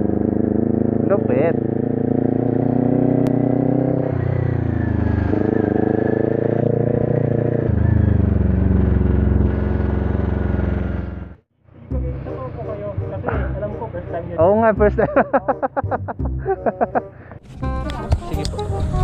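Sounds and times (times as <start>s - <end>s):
motorcycle engine riding at low speed: 0.0s - 15.9s.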